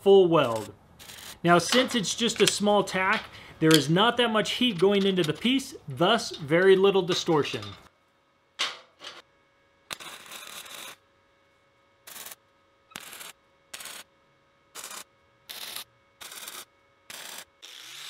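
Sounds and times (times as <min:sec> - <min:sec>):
welder arc bursts: 0:00.4 - 0:02.0, 0:12.0 - 0:12.4, 0:13.0 - 0:14.1, 0:14.7 - 0:18.0.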